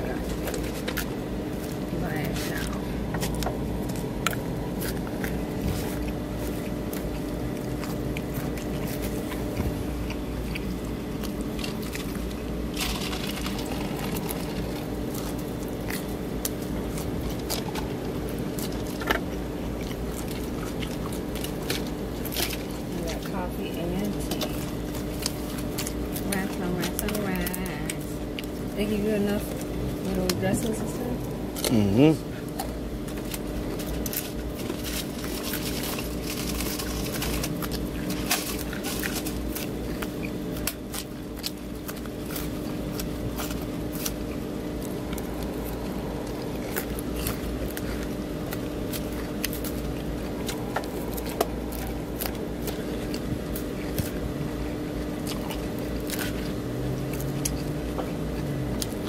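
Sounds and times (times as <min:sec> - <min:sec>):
constant hum: 0:00.0 - 0:59.0.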